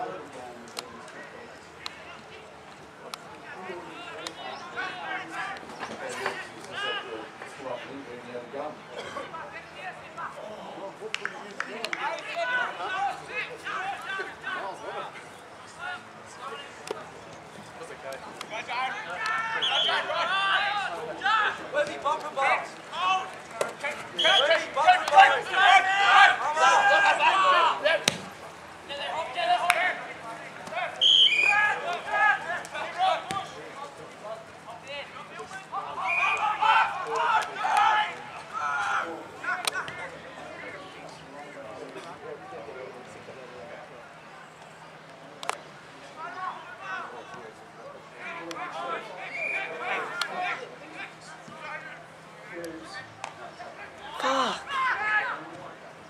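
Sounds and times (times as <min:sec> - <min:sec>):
voices shouting: 0:11.8 - 0:16.8, 0:18.4 - 0:34.1, 0:34.7 - 0:41.0, 0:48.1 - 0:55.6.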